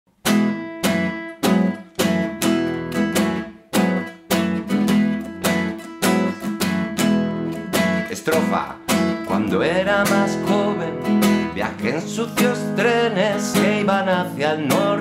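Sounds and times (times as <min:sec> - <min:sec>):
classical guitar strumming: 0:00.1 - 0:15.0.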